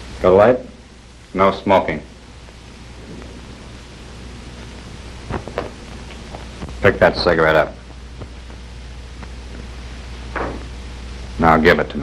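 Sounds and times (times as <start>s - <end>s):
film soundtrack hiss: 0.0s - 12.0s
low hum: 2.0s - 12.0s.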